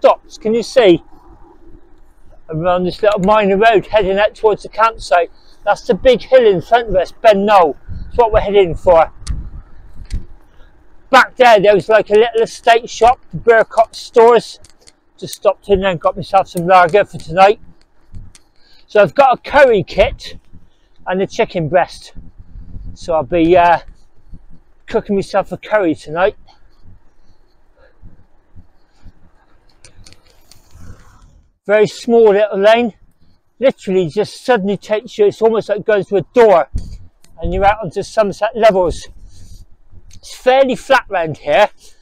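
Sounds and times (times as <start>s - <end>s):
wind rumble: 0.0s - 31.6s, 36.6s - 40.4s
bicycle road noise on tarmac: 0.0s - 42.0s
faint ticks: 8.8s - 11.2s, 11.8s - 31.5s, 32.8s - 33.7s, 36.3s - 42.0s
faint clicks: 9.2s - 11.0s, 13.0s - 15.5s, 16.1s - 19.1s, 26.3s - 31.5s.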